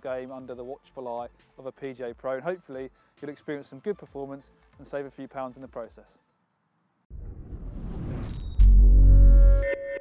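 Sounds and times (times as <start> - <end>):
rising whoosh: 7.1 - 9.7.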